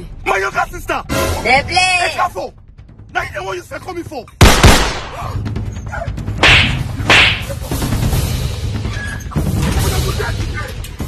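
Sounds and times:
sharp whip-crack strikes: 6.4s - 7.6s.

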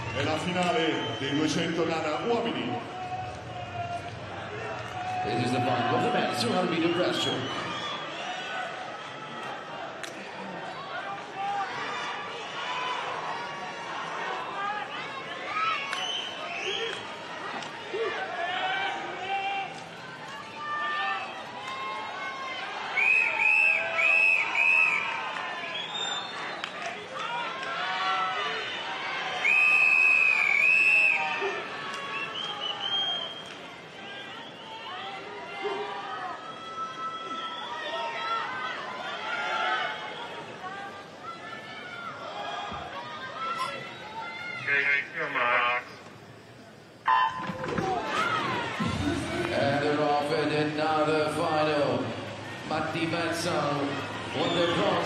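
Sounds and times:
stadium crowd chatter: 0.0s - 55.0s
referee's whistle blasts: 47.0s - 47.7s.

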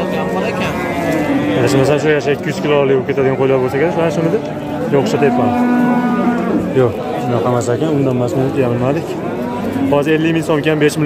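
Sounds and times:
people talking: 0.0s - 5.8s, 6.5s - 11.0s.

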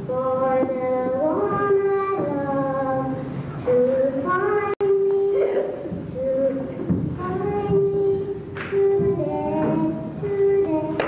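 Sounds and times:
girl singing sustained notes: 0.0s - 11.0s.

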